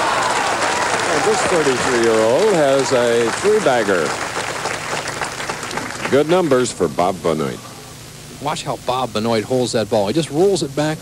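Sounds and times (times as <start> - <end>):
audience applauding: 0.0 - 6.6.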